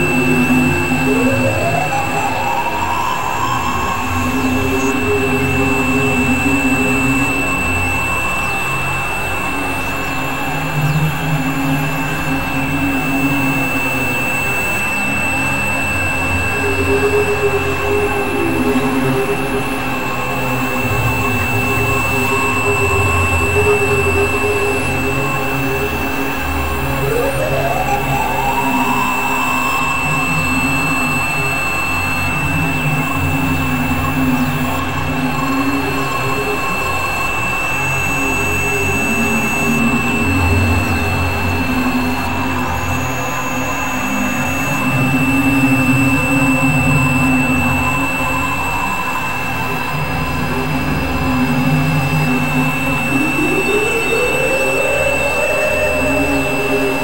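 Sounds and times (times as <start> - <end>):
droning experimental noise music: 0.0 - 57.0
steady high whine: 0.0 - 57.0.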